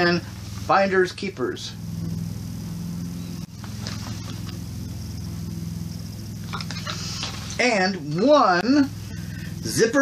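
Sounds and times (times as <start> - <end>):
low background hum: 0.0 - 10.0.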